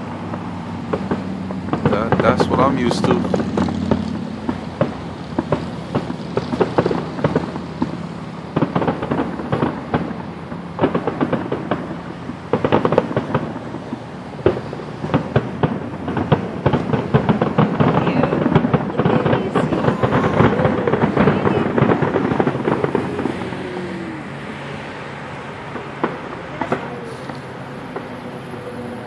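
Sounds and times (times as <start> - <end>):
fireworks bursting: 0.0 - 29.0.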